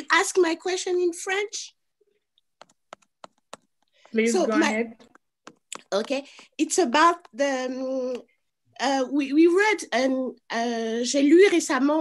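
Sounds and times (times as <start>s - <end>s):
computer keyboard tapping: 2.3s - 4.4s, 5.0s - 7.4s.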